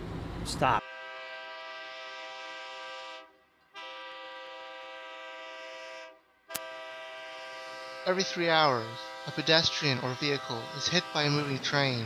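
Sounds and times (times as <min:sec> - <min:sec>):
locomotive air horn blasts: 0:00.8 - 0:12.0.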